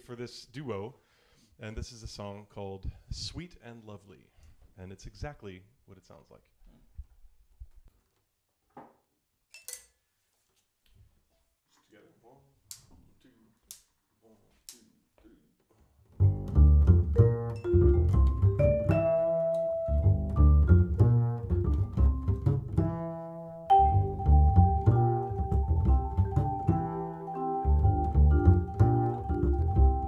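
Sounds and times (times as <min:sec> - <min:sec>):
plucked double bass: 0:16.1 - 0:30.0
vibraphone: 0:17.2 - 0:21.2, 0:23.7 - 0:30.0.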